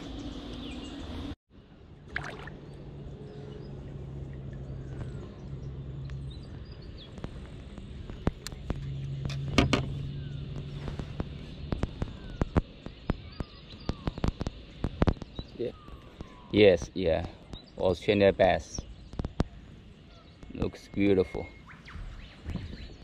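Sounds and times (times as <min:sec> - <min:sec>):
steady low hum: 0:00.0 - 0:23.0
faint bird chirps: 0:04.6 - 0:23.0
fish flapping clicks and knocks: 0:06.5 - 0:15.5.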